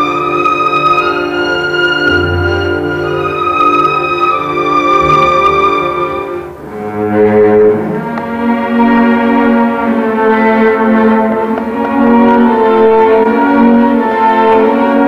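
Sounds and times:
string orchestra with solo cello: 0:00.0 - 0:15.0.

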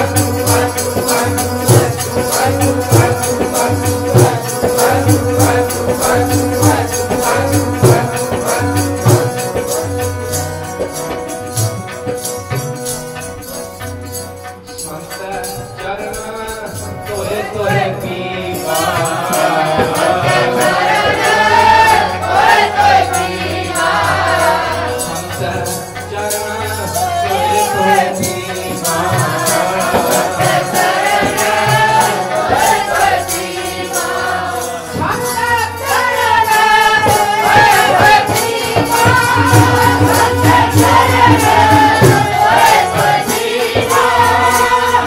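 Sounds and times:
group singing: 0:00.0 - 0:12.7, 0:14.9 - 0:45.0
harmonium: 0:00.0 - 0:45.0.

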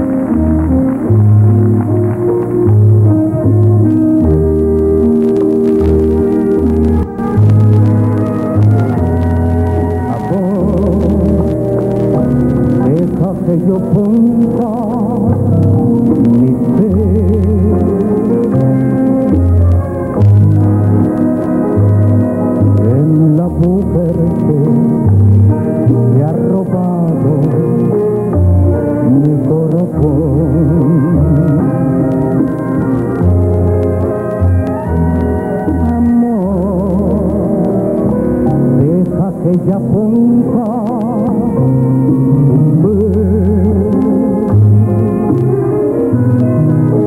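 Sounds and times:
orchestra playing chords: 0:00.0 - 0:47.0.

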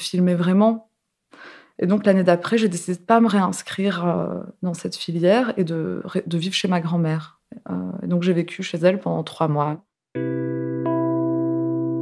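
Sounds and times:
sustained musical chord: 0:10.2 - 0:12.0.

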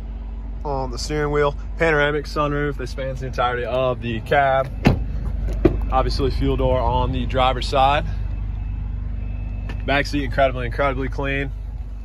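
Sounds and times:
truck engine idling: 0:00.0 - 0:12.0.

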